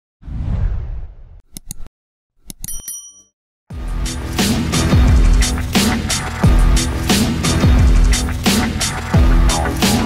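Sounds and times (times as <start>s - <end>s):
bright bell ding: 2.6s - 3.3s
music: 3.7s - 10.0s.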